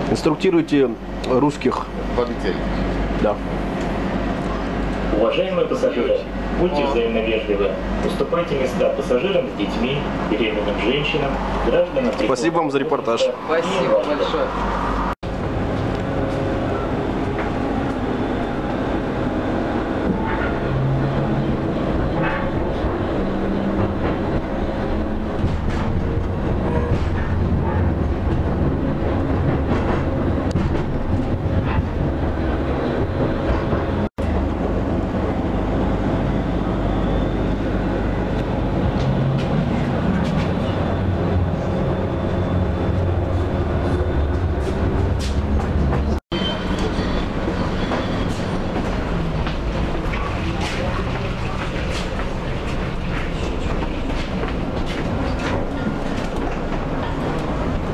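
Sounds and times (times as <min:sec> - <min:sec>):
tram wheels rumbling on rail: 0:00.0 - 0:57.9
track clicks and knocks: 0:22.0 - 0:34.7.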